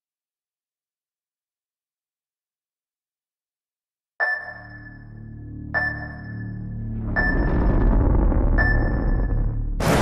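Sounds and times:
film score music: 4.3 - 10.0
low rumble: 6.8 - 10.0.

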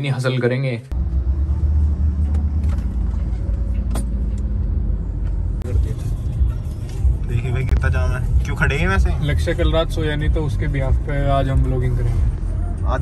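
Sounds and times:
car engine and tyres rumbling: 0.9 - 13.0.

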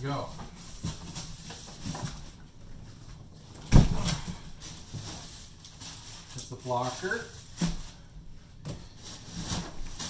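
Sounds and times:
cardboard and plastic rustling: 0.0 - 10.0.

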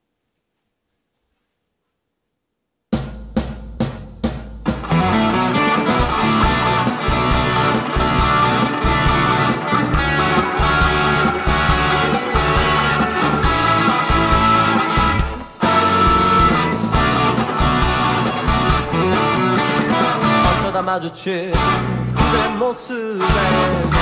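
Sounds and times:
drum and guitar hits: 2.9 - 20.9, 21.6 - 24.0
rock band playing: 4.6 - 20.9, 21.6 - 24.0.

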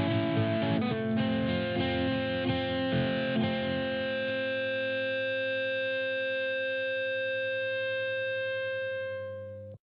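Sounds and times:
distorted electric guitar chord: 0.0 - 9.8.

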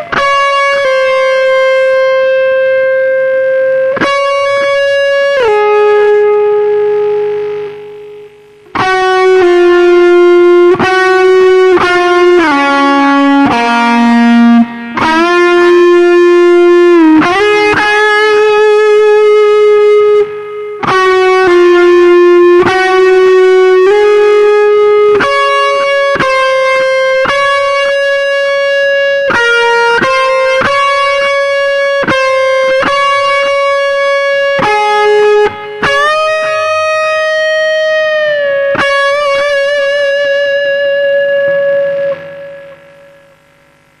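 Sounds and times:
electric guitar lead melody: 0.0 - 44.0.

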